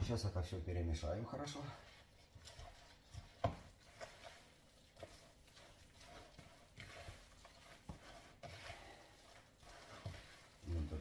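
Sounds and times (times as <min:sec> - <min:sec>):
hands mixing meat in a bowl: 0:00.0 - 0:11.0.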